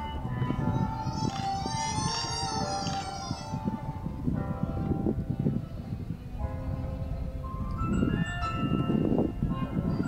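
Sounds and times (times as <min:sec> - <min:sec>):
slow bell-like melody: 0:06.4 - 0:10.0.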